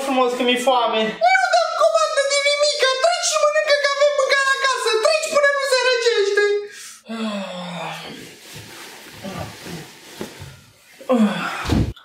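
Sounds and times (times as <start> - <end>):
bedding rustling: 8.2 - 11.1
man grunting groans: 11.1 - 11.9.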